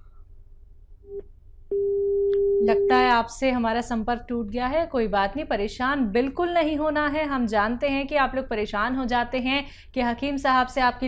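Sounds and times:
loud steady telephone tone: 1.1s - 3.2s.

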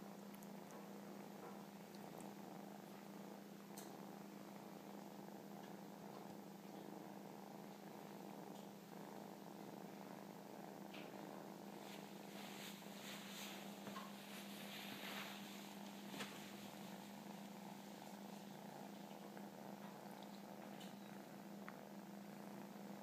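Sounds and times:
kittens purring: 0.0s - 23.0s
soft ticks: 5.6s - 6.4s, 19.8s - 21.0s.

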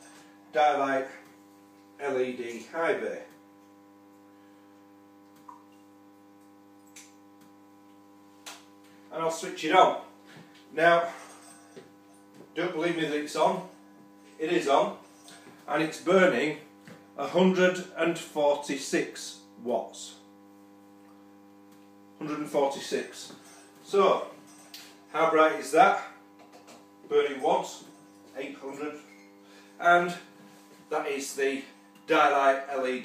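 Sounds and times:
lamp ballast electrical hum: 0.0s - 33.0s.

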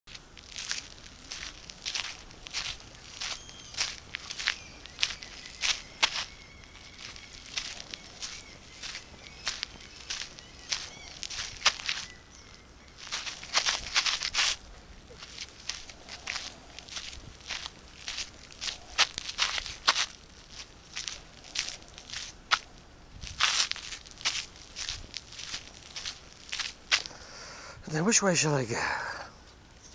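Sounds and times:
footsteps in sandals on gritty pavement: 0.1s - 27.2s.

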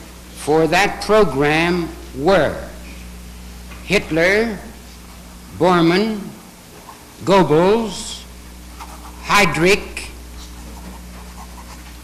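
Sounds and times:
recording hum and hiss: 0.0s - 12.0s.

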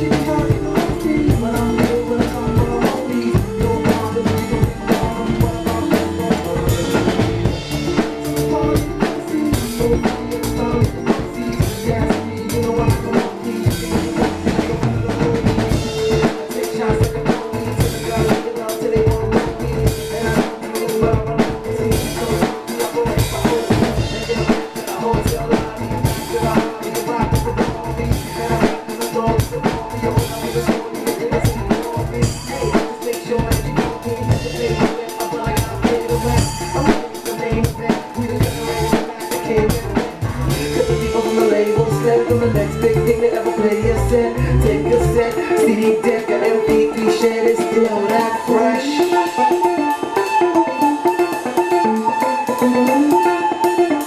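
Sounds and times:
drum kit hip-hop groove: 0.0s - 54.0s
recorded band track: 0.0s - 54.0s.

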